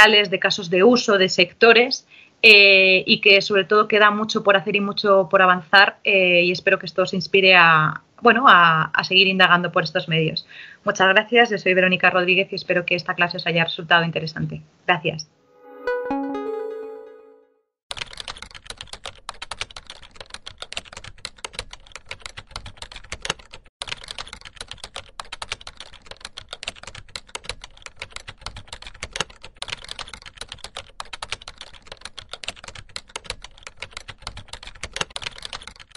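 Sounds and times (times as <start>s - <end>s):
typing on computer keyboard: 17.9s - 35.9s.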